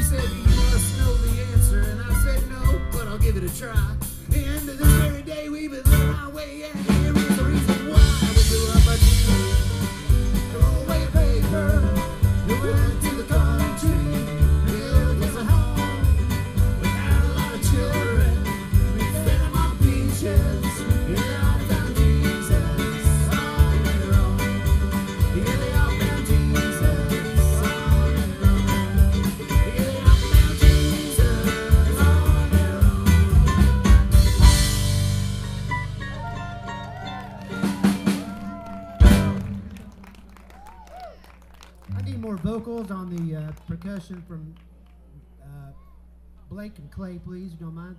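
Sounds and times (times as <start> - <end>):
upright bass pulse: 0.0 - 5.2, 6.9 - 40.2
acoustic string band playing: 7.1 - 38.2.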